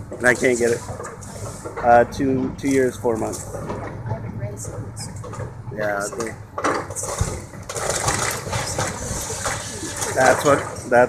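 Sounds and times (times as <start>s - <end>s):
excavator rumbling: 0.0s - 11.0s
debris crushing: 5.1s - 11.0s.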